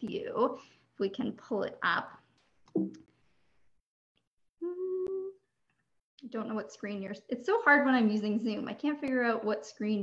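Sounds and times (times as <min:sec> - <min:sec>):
woman humming: 0:04.6 - 0:05.4.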